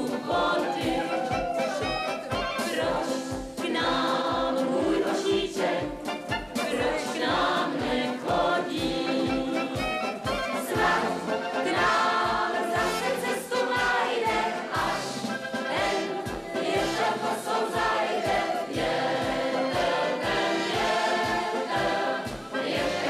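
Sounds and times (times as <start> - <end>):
group of voices singing: 0.0 - 23.0
instrumental accompaniment: 0.0 - 23.0.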